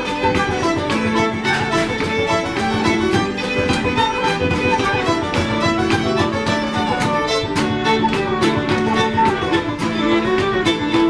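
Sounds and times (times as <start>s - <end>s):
fiddles playing melody: 0.0s - 11.0s
traditional band playing a reel: 0.0s - 11.0s.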